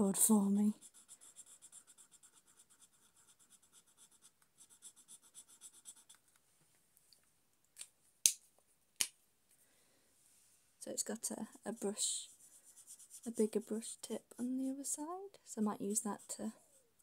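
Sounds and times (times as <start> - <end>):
marker pen rubbing on paper: 0.7 - 6.3, 11.6 - 14.7, 15.7 - 17.0.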